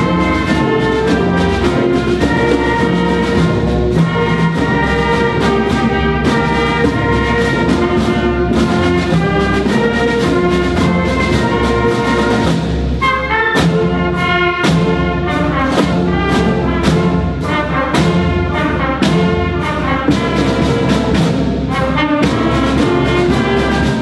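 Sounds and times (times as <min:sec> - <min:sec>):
drum line strokes: 0:00.0 - 0:24.0
marching band playing: 0:00.0 - 0:24.0.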